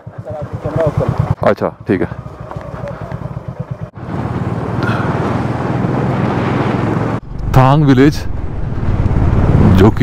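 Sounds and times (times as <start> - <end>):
motorcycle engine: 0.0 - 10.0.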